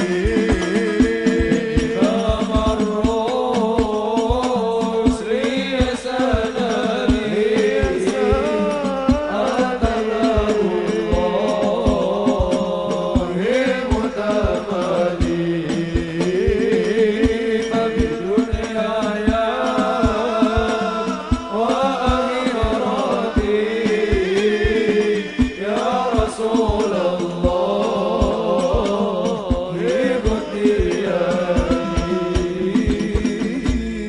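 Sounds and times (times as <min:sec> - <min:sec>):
devotional singing: 0:00.0 - 0:34.0
steady drum beat: 0:00.0 - 0:34.0.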